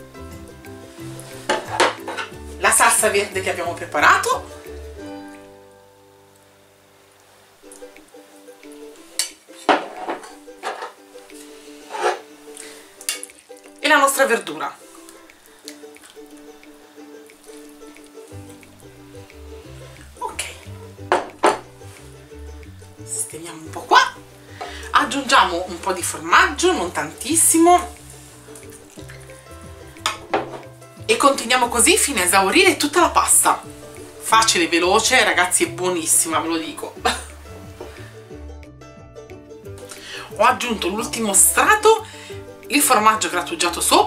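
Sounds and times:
background music: 0:00.0 - 0:44.0
spoon clinking on dishes: 0:13.1 - 0:13.4
bowl knocking on wooden table: 0:21.0 - 0:21.7, 0:30.1 - 0:30.7.

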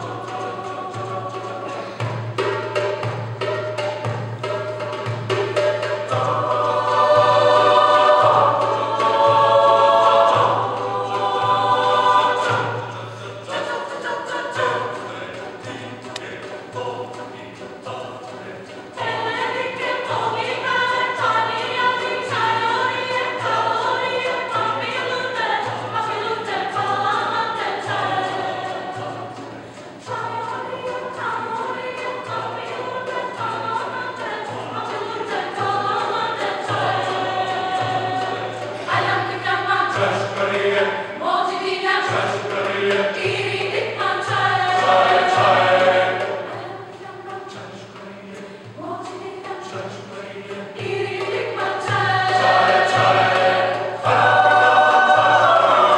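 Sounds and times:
mixed choir singing folk song: 0:00.0 - 0:55.9.

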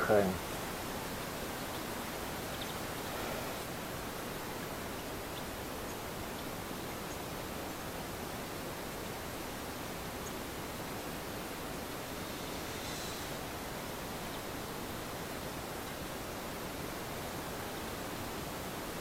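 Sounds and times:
outdoor background hiss: 0:00.0 - 0:19.0.

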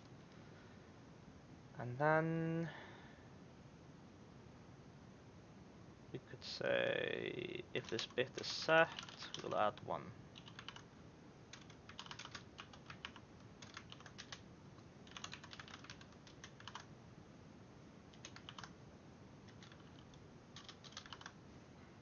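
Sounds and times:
computer keyboard typing: 0:07.8 - 0:09.8, 0:10.4 - 0:10.9, 0:11.5 - 0:14.4, 0:15.0 - 0:16.9, 0:18.1 - 0:18.8, 0:19.5 - 0:21.4.

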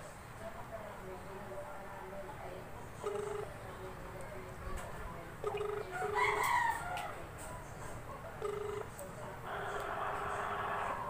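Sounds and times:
phone ringback tone: 0:03.0 - 0:03.5, 0:05.4 - 0:06.3, 0:08.4 - 0:08.9
rooster crowing: 0:05.9 - 0:07.1.

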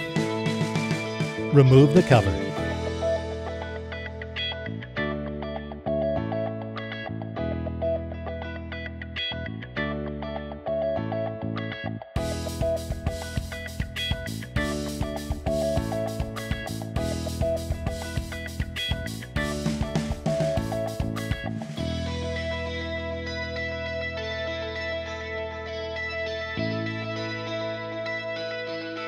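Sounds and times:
guitar: 0:00.0 - 0:29.0
regular beat: 0:01.5 - 0:02.6.

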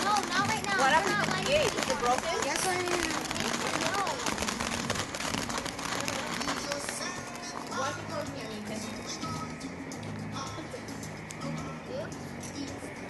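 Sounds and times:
fountain firework crackling hiss: 0:00.0 - 0:09.7
voices: 0:00.0 - 0:13.0.

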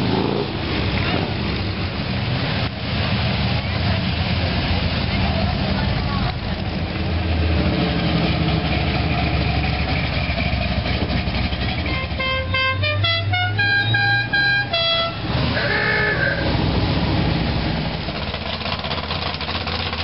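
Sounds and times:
car engines rumbling: 0:00.0 - 0:20.0
musical car horn: 0:11.8 - 0:16.5.

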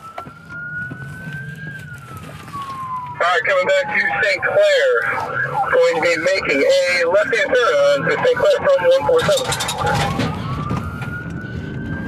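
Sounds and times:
engine and road rumble: 0:00.0 - 0:12.0
police siren wailing: 0:00.0 - 0:12.0.

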